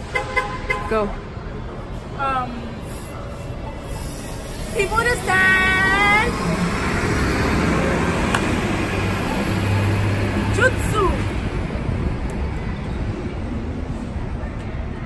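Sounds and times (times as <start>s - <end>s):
bus engine hum: 0.0s - 15.0s
street traffic: 0.0s - 15.0s.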